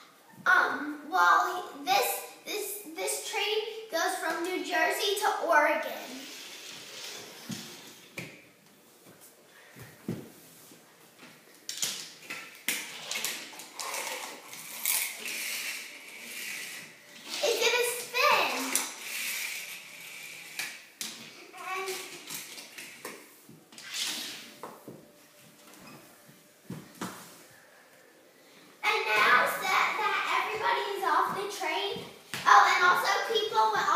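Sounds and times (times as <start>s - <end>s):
children's voices: 0.5s - 6.3s, 17.3s - 18.8s, 21.5s - 22.1s, 28.8s - 33.9s.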